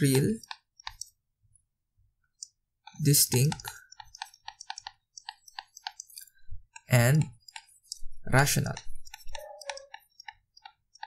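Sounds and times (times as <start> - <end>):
stylus clicking on tablet screen: 0.0 - 11.0.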